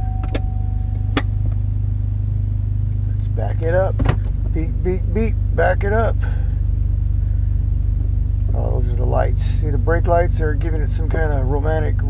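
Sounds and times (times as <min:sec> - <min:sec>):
pickup truck engine idling: 0:00.0 - 0:12.0.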